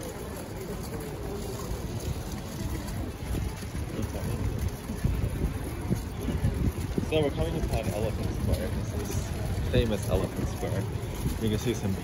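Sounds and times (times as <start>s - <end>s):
faint street ambience: 0.0s - 12.0s
wind buffeting microphone: 0.0s - 12.0s.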